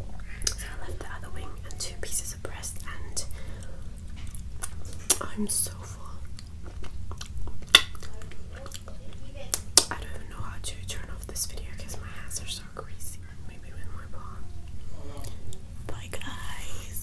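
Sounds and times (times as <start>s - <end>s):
close whispering: 0.2s - 4.0s, 5.0s - 6.3s, 9.9s - 17.0s.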